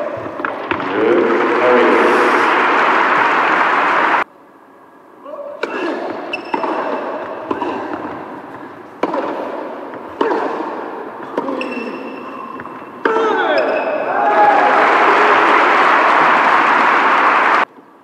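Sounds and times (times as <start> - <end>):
crowd applauding and cheering: 0.6 - 4.2, 14.1 - 17.7
racket striking tennis ball: 5.6 - 13.7
people shouting: 12.3 - 17.5.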